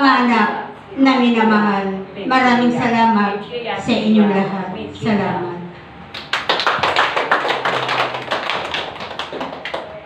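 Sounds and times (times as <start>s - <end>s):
small group clapping: 6.1s - 10.0s.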